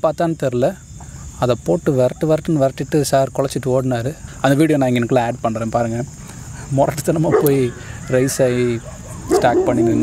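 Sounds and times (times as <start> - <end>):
crickets chirring: 0.0 - 10.0
person speaking rapidly: 1.4 - 10.0.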